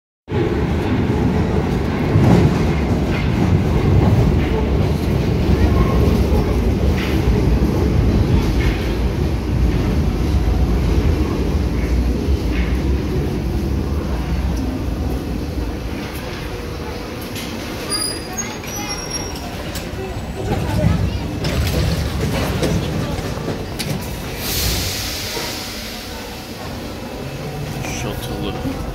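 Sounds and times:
subway train rumbling: 0.3 - 28.9.

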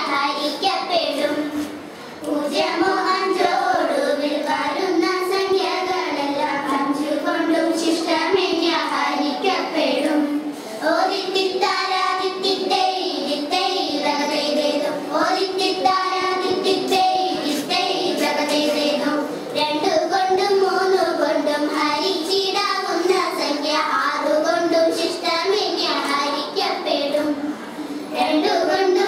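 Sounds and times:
girls singing together: 0.0 - 29.0.

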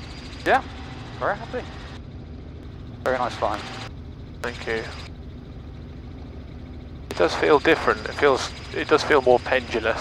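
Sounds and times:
helicopter engine and rotors drone: 0.0 - 10.0.

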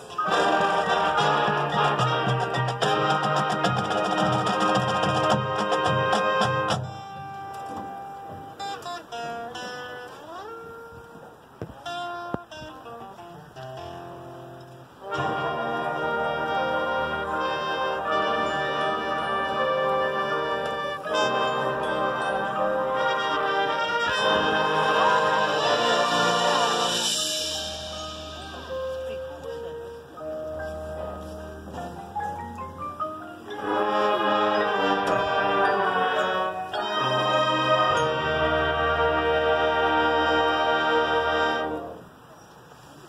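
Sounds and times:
marching band playing: 0.0 - 9.9, 15.0 - 42.0
mallet keyboard notes: 0.0 - 11.3, 12.0 - 42.0.

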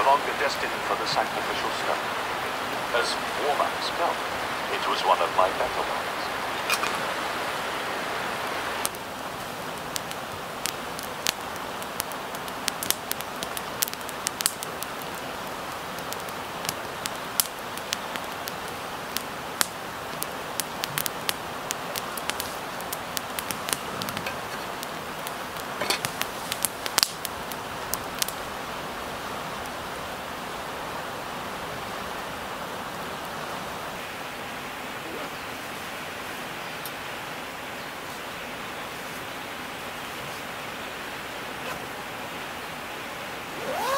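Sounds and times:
river water rushing: 0.0 - 26.6, 38.5 - 43.9
campfire crackling and popping: 0.0 - 30.3, 43.5 - 43.9.

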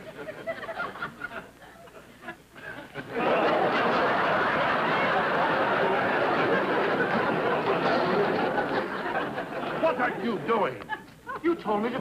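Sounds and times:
studio audience laughing: 0.0 - 11.6.

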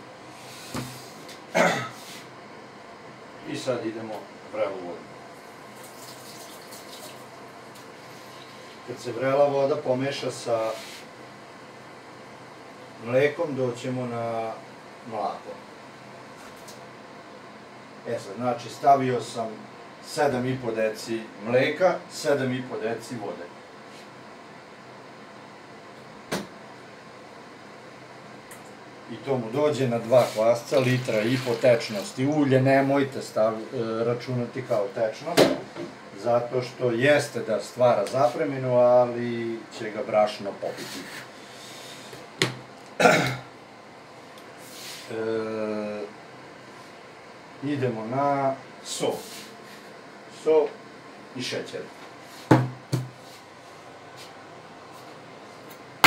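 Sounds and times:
low room hum: 0.0 - 56.0
sharp knocks on counter: 52.5 - 53.1.

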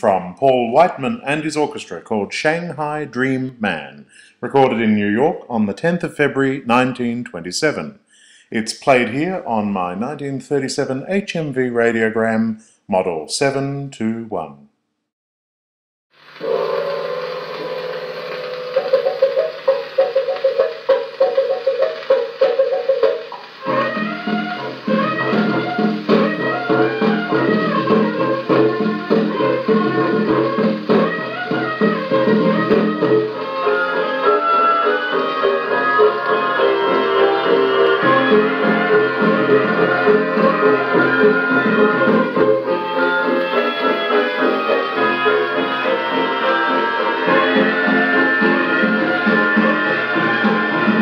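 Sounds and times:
old dance band record playing: 16.2 - 51.0.

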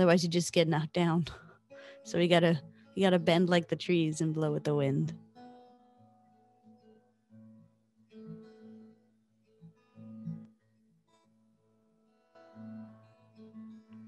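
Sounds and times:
acoustic guitar plucked softly: 0.0 - 14.0.

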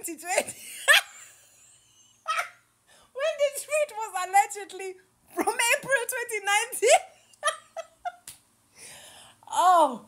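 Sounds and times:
woman laughing: 0.4 - 2.6, 6.9 - 8.3.

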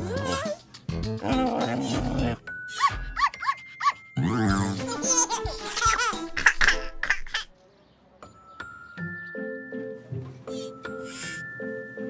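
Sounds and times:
cartoon music: 0.0 - 7.5.

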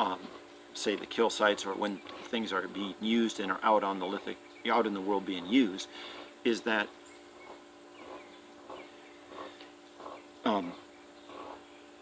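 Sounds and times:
small birds chirping: 0.0 - 12.0
steady low hum: 0.0 - 12.0.

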